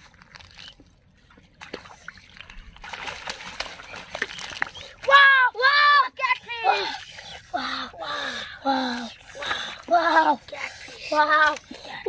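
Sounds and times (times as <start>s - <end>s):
small wet clicks: 10.5s - 12.0s.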